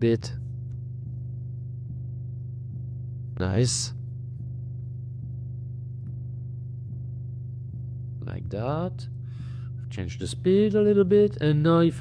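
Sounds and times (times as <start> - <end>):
faint pulse: 0.0 - 11.1
slowed music droning tone: 0.0 - 12.0.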